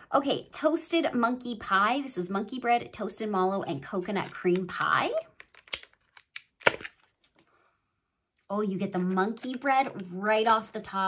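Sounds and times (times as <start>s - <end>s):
plastic clamshell clicking and crackling: 4.2s - 7.4s.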